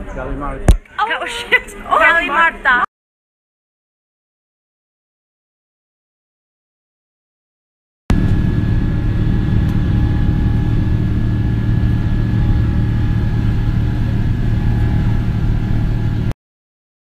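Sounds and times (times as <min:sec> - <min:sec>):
faint steady whine: 0:08.1 - 0:16.3
jet engines rumbling: 0:08.1 - 0:16.3.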